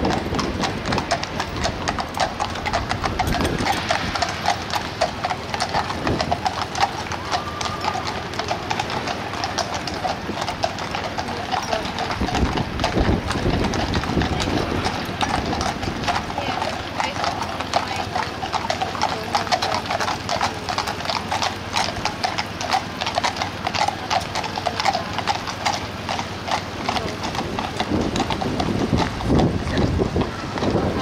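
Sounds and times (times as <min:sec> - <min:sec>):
hooves clip-clopping on tarmac: 0:00.0 - 0:31.0.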